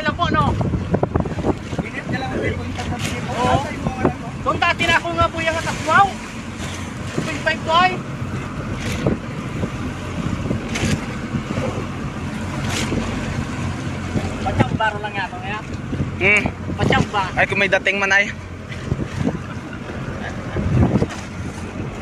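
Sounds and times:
boat engine running: 0:00.0 - 0:22.0
wind buffeting microphone: 0:00.0 - 0:22.0.

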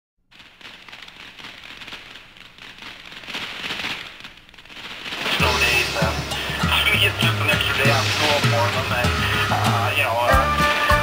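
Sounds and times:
dense crackling pops: 0:00.2 - 0:11.0
hiss: 0:00.3 - 0:11.0.

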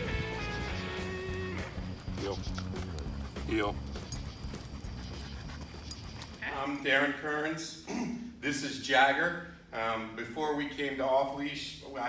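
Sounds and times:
dog panting: 0:00.4 - 0:07.2
soft footsteps: 0:01.4 - 0:06.9.

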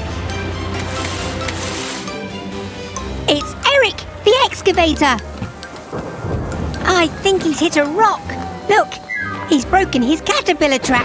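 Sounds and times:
steady rain: 0:00.0 - 0:11.0
thunder rumble: 0:03.9 - 0:09.5.

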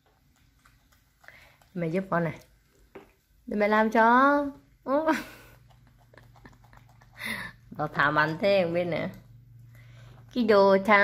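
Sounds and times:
monkey chewing food: 0:00.0 - 0:03.0, 0:05.3 - 0:07.5.

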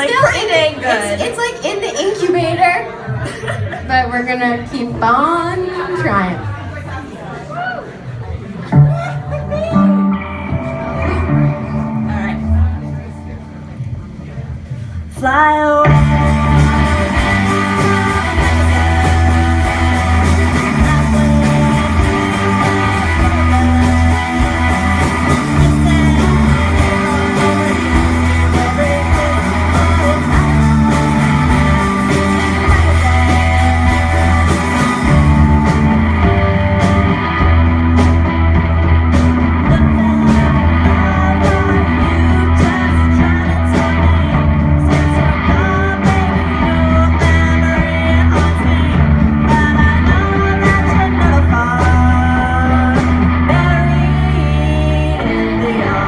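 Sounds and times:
rock band playing live: 0:00.0 - 0:06.9, 0:08.0 - 0:56.0
driving bass line: 0:15.8 - 0:56.0.

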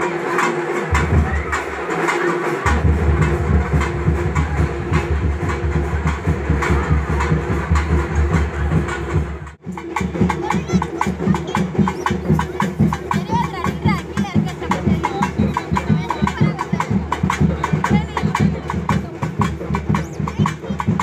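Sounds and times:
fast drumming: 0:00.0 - 0:21.0.

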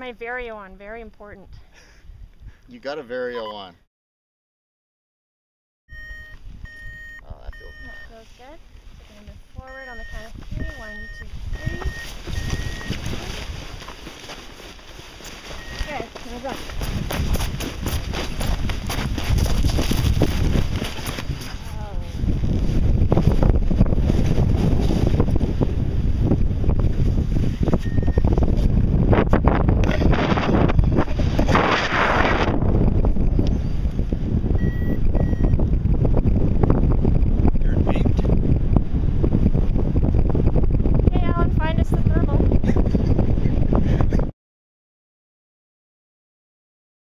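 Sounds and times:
wind buffeting microphone: 0:06.4 - 0:44.3
voices: 0:07.2 - 0:13.5, 0:15.7 - 0:16.7, 0:41.1 - 0:42.5.

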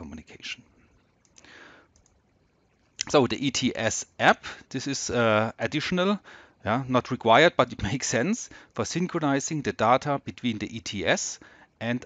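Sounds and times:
soft hiss: 0:00.0 - 0:12.0
computer mouse clicks: 0:01.2 - 0:02.2.

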